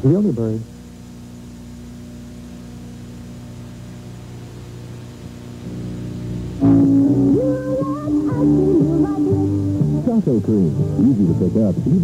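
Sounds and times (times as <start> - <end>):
faint tape hiss: 0.0 - 12.0
low electrical hum: 0.0 - 12.0.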